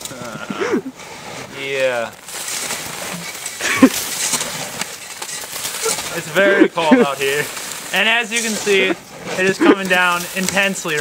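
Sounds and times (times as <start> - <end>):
person crying out: 0.4 - 0.9
water pouring and splashing: 1.4 - 11.0.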